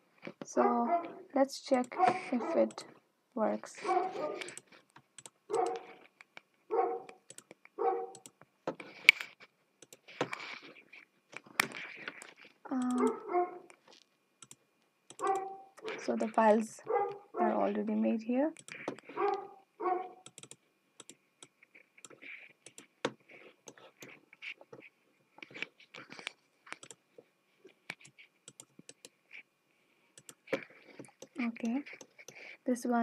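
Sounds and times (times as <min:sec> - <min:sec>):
dog barking: 0:00.6 - 0:01.2, 0:02.0 - 0:02.7, 0:03.8 - 0:04.5, 0:05.5 - 0:06.0, 0:06.7 - 0:07.2, 0:07.8 - 0:08.2, 0:13.0 - 0:13.7, 0:15.2 - 0:15.9, 0:16.8 - 0:17.6, 0:19.1 - 0:20.2
computer mouse clicks: 0:01.7 - 0:02.8, 0:04.4 - 0:06.4, 0:07.1 - 0:10.4, 0:11.4 - 0:13.8, 0:14.4 - 0:16.6, 0:18.6 - 0:19.4, 0:20.2 - 0:27.0, 0:27.9 - 0:29.2, 0:30.2 - 0:32.5.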